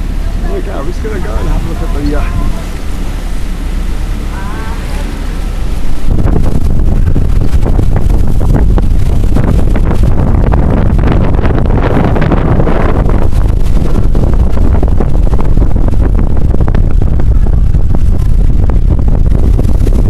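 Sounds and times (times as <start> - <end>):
wake rushing along hull: 0.0 - 20.0
wind buffeting microphone: 0.0 - 20.0.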